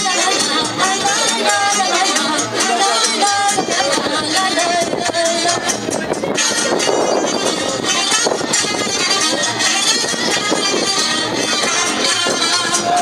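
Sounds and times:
folk dance music with voices: 0:00.0 - 0:13.0.

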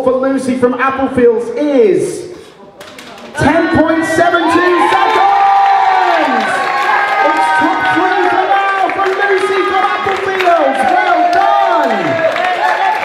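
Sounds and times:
children cheering and shouting: 0:03.4 - 0:13.0.

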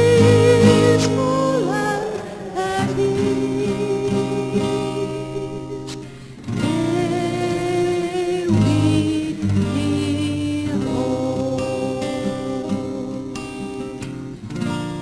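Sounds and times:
woman singing slow song: 0:00.0 - 0:14.7
acoustic guitar: 0:00.0 - 0:15.0.

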